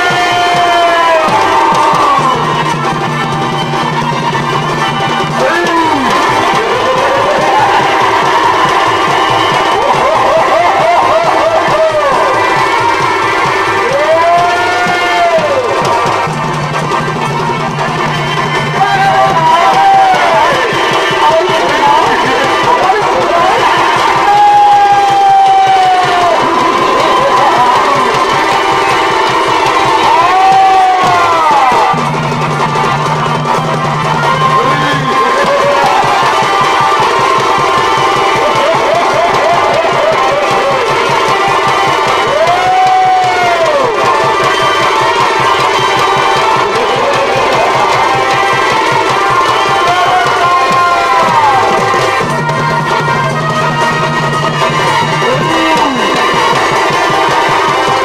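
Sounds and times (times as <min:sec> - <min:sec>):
fast drumming: 0:00.0 - 0:58.0
wailing shehnai melody: 0:00.0 - 0:58.0.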